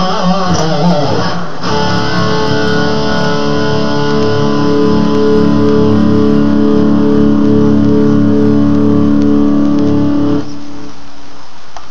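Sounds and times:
electric guitar chord ringing: 0.0s - 10.9s.

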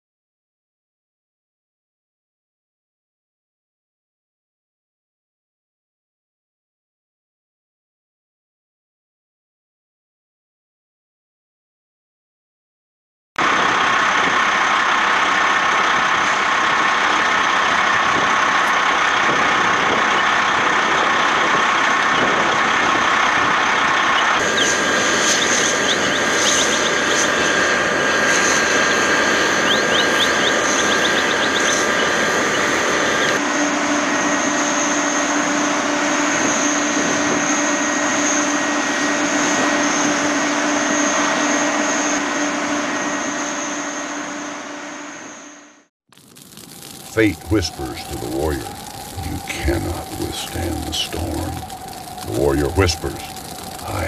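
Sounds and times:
engine with pump whine: 13.4s - 54.0s
hoses spraying water: 46.1s - 54.0s.

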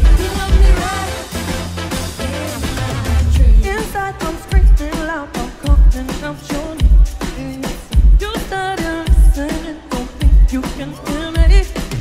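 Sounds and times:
heavy kick drum: 0.0s - 1.0s, 2.8s - 3.9s, 4.5s - 5.0s, 5.6s - 6.2s, 6.8s - 7.2s, 7.9s - 8.4s, 9.0s - 9.5s, 10.1s - 10.6s
woman singing: 0.0s - 1.3s, 2.3s - 12.0s
live pop band music: 0.0s - 12.0s.

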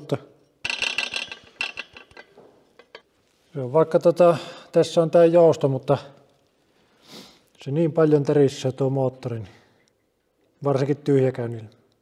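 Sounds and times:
metallic clicks and rattles: 0.6s - 3.1s.

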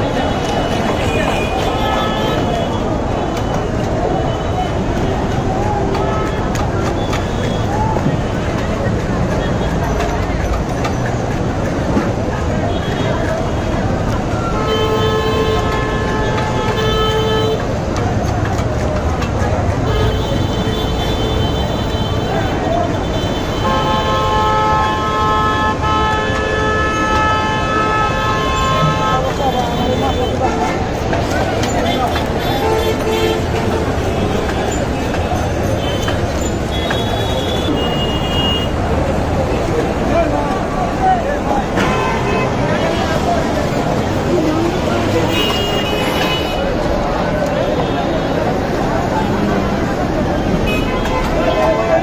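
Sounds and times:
traffic noise: 0.0s - 52.0s
mix of voices: 21.7s - 52.0s.

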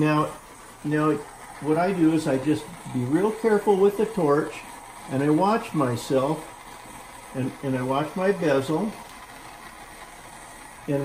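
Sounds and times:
man speaking: 0.0s - 6.6s, 7.3s - 9.0s
gas torch flame hissing: 0.0s - 11.0s.

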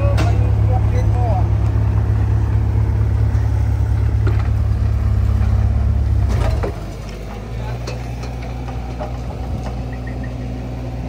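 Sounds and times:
diesel engine running at low revs: 0.0s - 11.0s.

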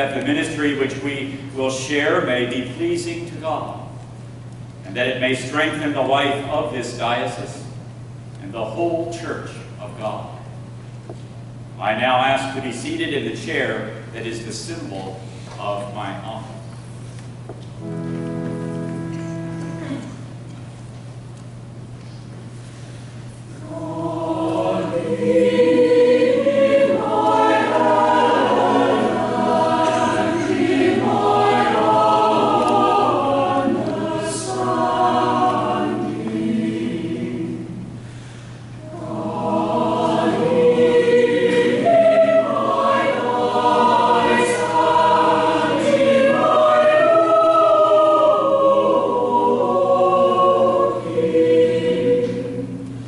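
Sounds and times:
choir singing: 17.8s - 20.2s, 23.5s - 38.0s, 38.8s - 53.0s.

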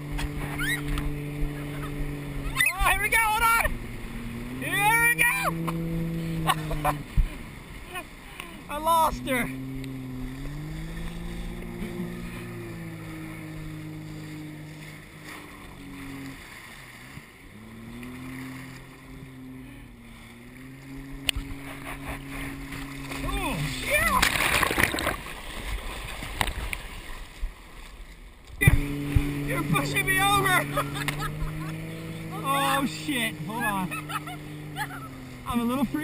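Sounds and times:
loud splashing: 0.0s - 27.4s, 28.6s - 36.0s
motorboat engine droning: 0.0s - 36.0s
water rushing: 0.0s - 36.0s.

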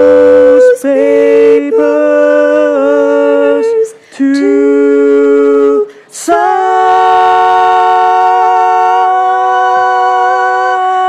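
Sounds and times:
voices singing long notes: 0.0s - 11.0s.

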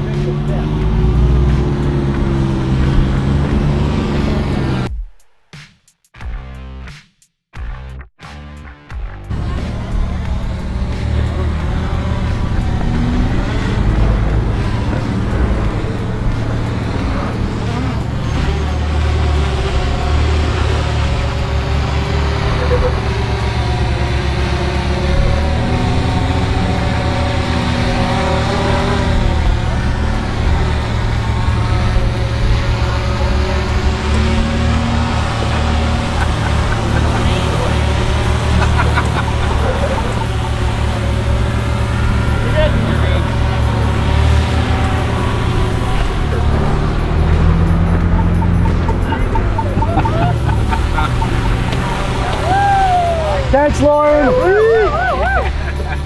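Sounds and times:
engine low rumble: 0.0s - 4.9s, 7.6s - 56.0s
voices: 0.0s - 4.9s, 9.3s - 56.0s.

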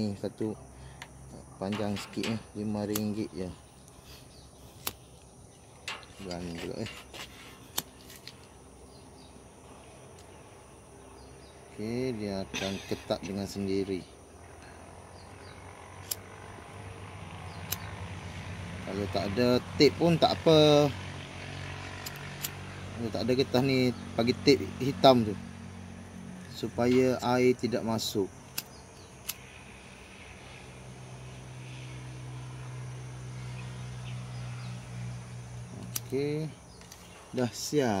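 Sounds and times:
steady low hum: 0.0s - 38.0s
gas lighter click: 2.9s - 3.2s.

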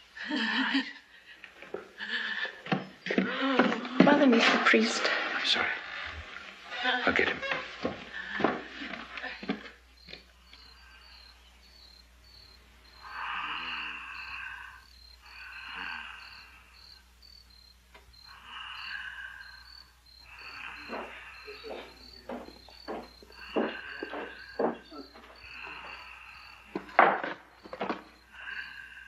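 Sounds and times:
crickets chirping: 0.0s - 29.0s.

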